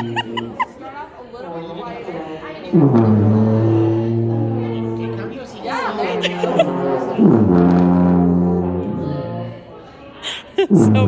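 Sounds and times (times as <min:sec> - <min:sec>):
tuba low note: 0:02.7 - 0:05.4, 0:06.2 - 0:09.7, 0:10.7 - 0:11.0.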